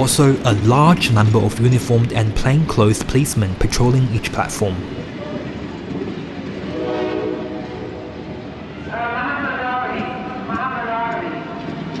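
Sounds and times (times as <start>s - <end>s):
train wheels rumbling: 0.0s - 12.0s.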